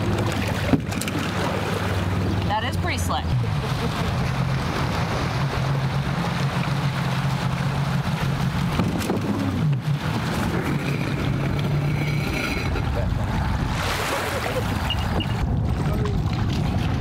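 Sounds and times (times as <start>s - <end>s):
water splashing: 0.0s - 17.0s
watercraft engine running: 0.0s - 17.0s.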